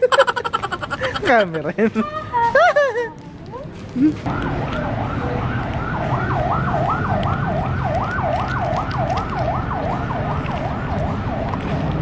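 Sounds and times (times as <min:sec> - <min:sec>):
emergency siren yelping: 0:04.3 - 0:11.8.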